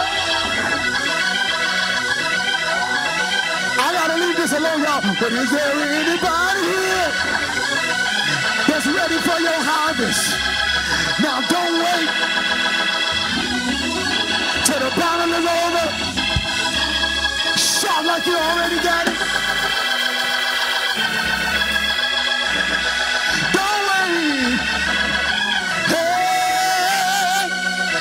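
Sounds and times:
electric organ chords: 0.0 - 28.0.

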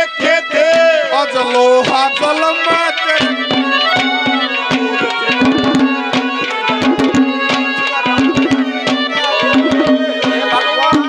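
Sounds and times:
harmonium melody: 0.0 - 11.0
hand drums playing fast: 1.8 - 11.0.

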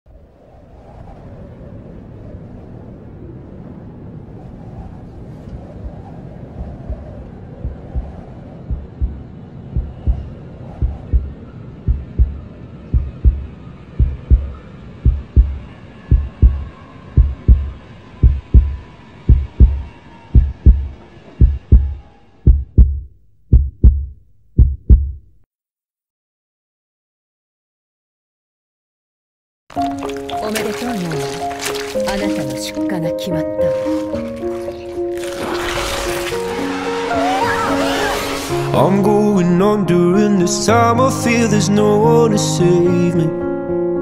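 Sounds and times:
low rumbling: 0.1 - 25.4
heartbeat double thumps: 5.8 - 25.4.

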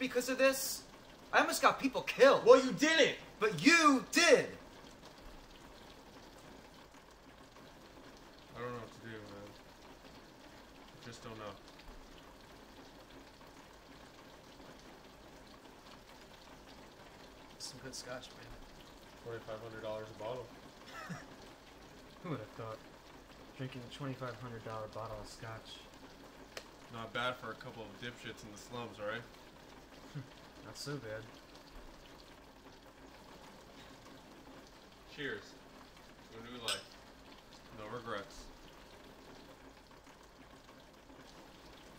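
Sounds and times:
rain falling on a window: 0.0 - 41.9.

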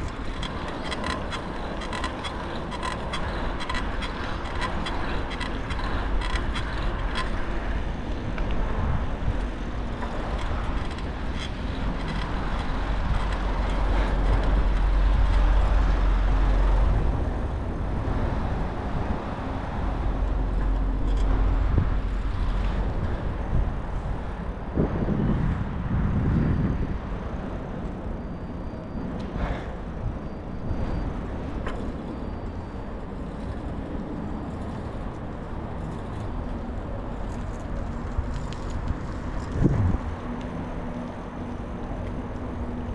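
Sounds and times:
street traffic: 0.0 - 42.9.

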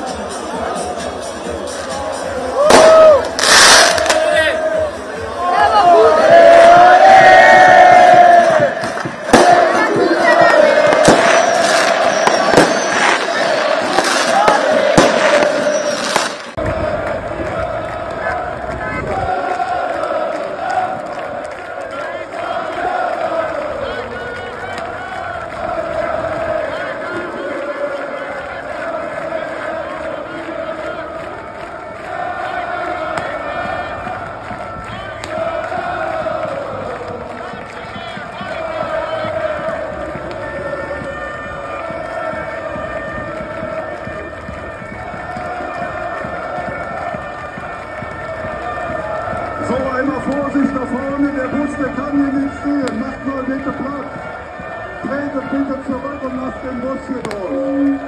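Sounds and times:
crowd chanting and singing: 0.0 - 58.0
firecracker bangs: 2.6 - 4.4, 8.5 - 16.8.

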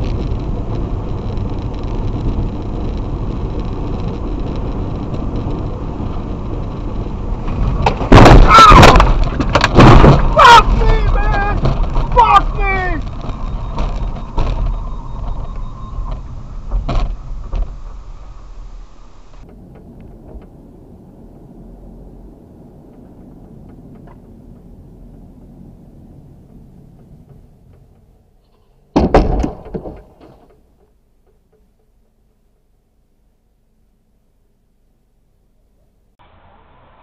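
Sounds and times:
road noise inside moving car: 0.0 - 37.0
sudden loud burst: 8.0 - 13.1
sharp knocks: 28.9 - 32.1.

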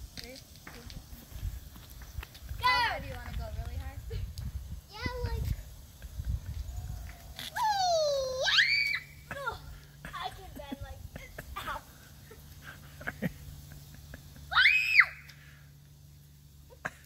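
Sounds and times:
children squealing and shrieking: 7.3 - 9.3, 14.5 - 15.3.

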